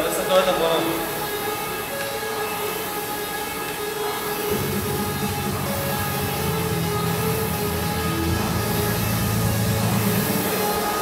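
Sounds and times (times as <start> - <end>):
background music: 0.0 - 11.0
rowing machine flywheel whirring: 0.0 - 11.0.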